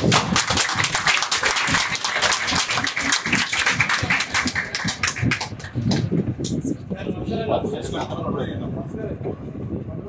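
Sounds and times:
crowd clapping: 0:00.0 - 0:06.2.

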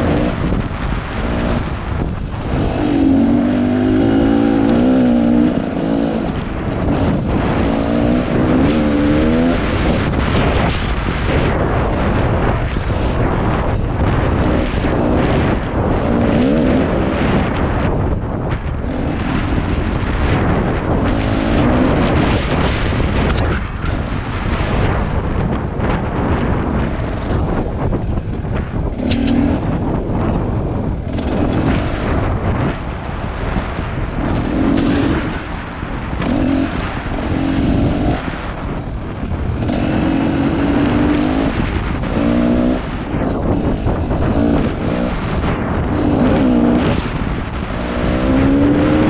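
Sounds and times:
dirt bike engine revving: 0:00.0 - 0:49.0
wind rumble on microphone: 0:00.0 - 0:49.0
sharp clicks: 0:23.2 - 0:23.5, 0:29.0 - 0:29.8.

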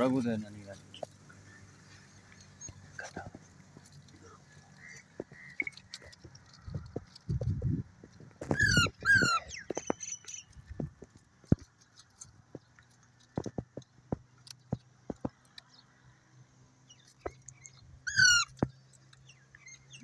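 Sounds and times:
soft clicks and chirps: 0:00.9 - 0:16.1, 0:16.9 - 0:20.0
parakeet calls: 0:08.5 - 0:10.5, 0:16.9 - 0:18.7.

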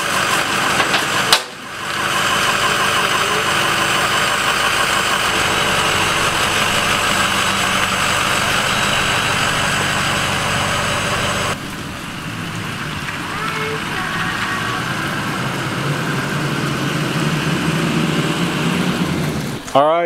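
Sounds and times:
truck engine idling: 0:00.0 - 0:20.0.

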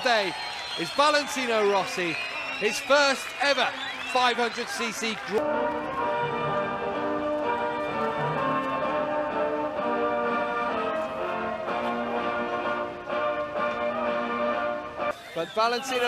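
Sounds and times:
orchestral music with brass: 0:05.4 - 0:15.2.

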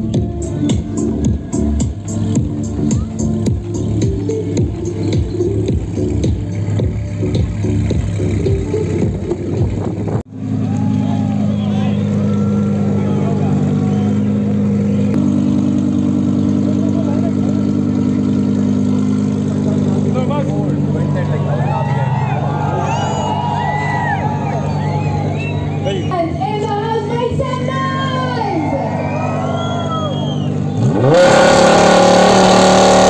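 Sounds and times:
background music with a beat: 0:00.0 - 0:09.8
car engine idling: 0:00.0 - 0:33.0
people's voices: 0:10.6 - 0:15.2, 0:16.5 - 0:30.9.

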